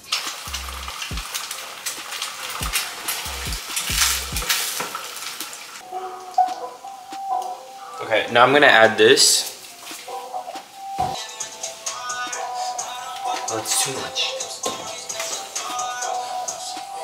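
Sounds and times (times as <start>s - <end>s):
eggs sizzling in a frying pan: 0.0s - 13.8s, 14.4s - 17.0s.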